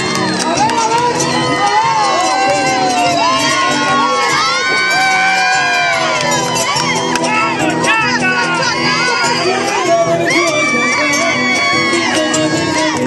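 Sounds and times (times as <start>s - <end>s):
crowd cheering and shouting: 0.0s - 13.0s
marinera music: 0.0s - 13.0s.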